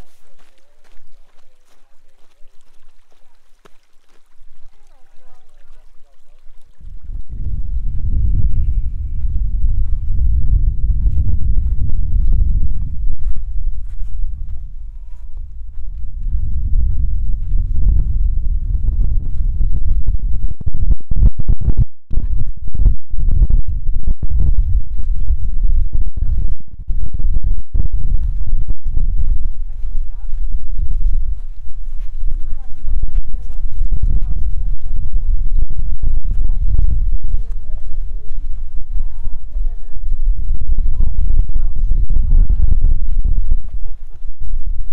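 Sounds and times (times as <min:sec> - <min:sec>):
wind buffeting microphone: 0:04.3 - 0:44.9.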